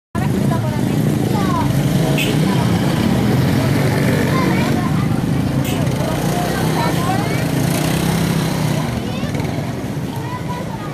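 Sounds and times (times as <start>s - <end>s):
crowd talking: 0.2s - 10.9s
motor scooter engines running: 0.2s - 10.9s.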